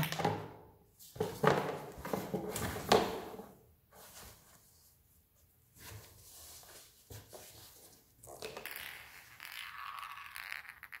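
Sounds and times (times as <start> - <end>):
plastic ball rolling on tile: 8.2 - 11.0.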